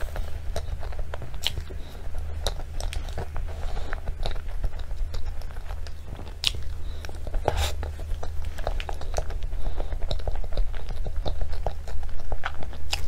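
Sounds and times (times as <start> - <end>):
steady low hum: 0.0 - 13.0
wet mouth clicks and smacks: 0.5 - 1.7.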